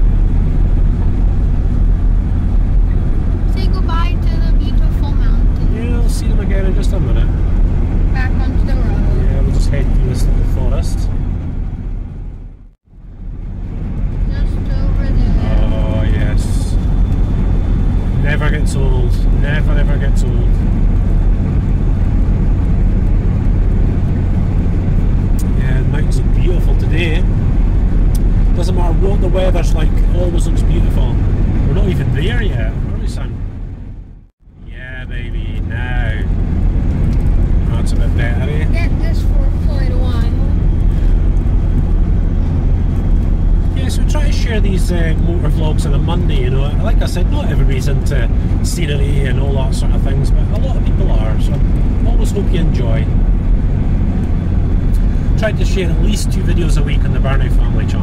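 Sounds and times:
engine and tyre drone: 0:00.0 - 0:58.0.

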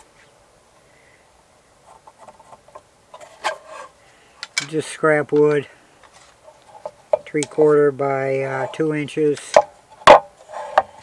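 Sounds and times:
wood tapping and scraping on steel: 0:01.8 - 0:11.0.

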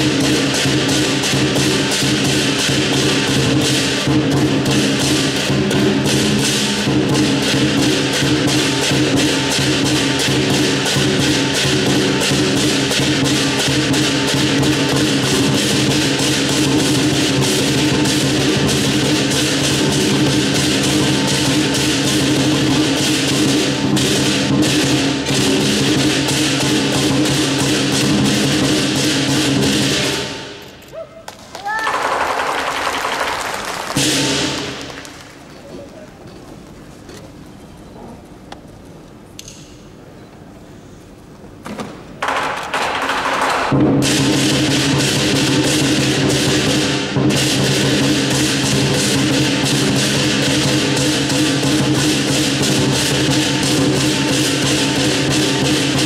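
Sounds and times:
big drum: 0:00.0 - 0:30.8, 0:33.9 - 0:35.1, 0:42.2 - 0:56.0
cymbal crashes: 0:00.0 - 0:30.8, 0:43.7 - 0:56.0.

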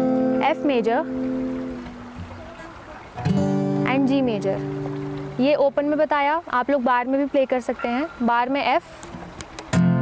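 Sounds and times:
acoustic guitar chords strummed: 0:00.0 - 0:05.9, 0:09.2 - 0:10.0.

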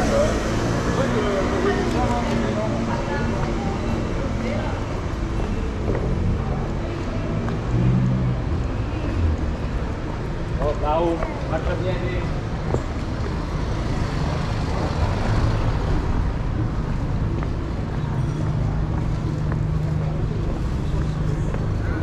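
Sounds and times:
city street traffic: 0:00.0 - 0:22.0.

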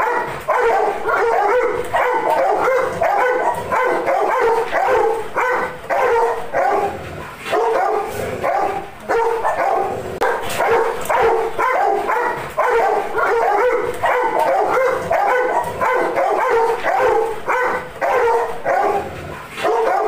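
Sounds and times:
dog barking and yelping: 0:00.0 - 0:20.0.

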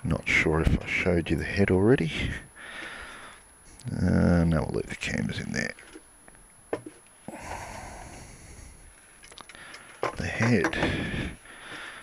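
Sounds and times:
soft breathy hiss: 0:02.0 - 0:04.4, 0:07.2 - 0:12.0.

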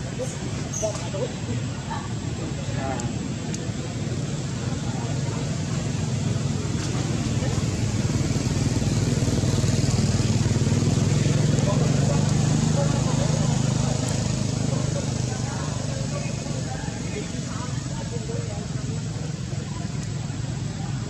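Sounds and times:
motor engine humming: 0:03.2 - 0:21.0.

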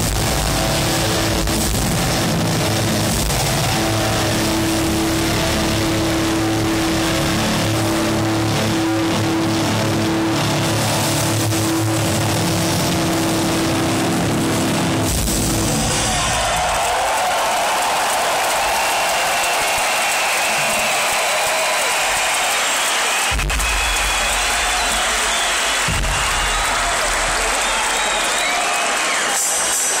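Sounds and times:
crowd cheering and applauding: 0:00.0 - 0:30.0
whistling: 0:18.8 - 0:29.7.

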